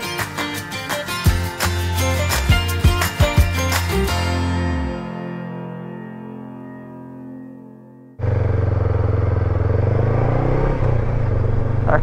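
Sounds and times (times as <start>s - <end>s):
motorcycle engine running: 8.2s - 12.0s
road noise: 8.2s - 12.0s.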